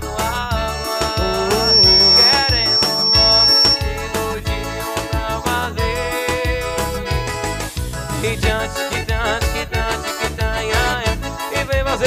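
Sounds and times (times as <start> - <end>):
electronic keyboard melody: 0.0 - 5.9
steady beat: 0.6 - 3.9
thin high tone: 0.6 - 3.9.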